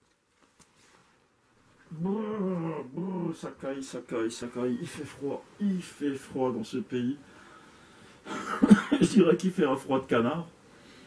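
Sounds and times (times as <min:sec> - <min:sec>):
man's drawn-out vocal cry: 0:01.9 - 0:03.5.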